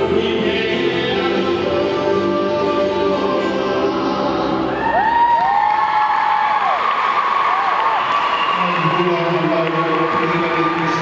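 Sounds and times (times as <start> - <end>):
audience applauding and cheering: 4.7 - 11.0
crowd whooping: 4.7 - 11.0.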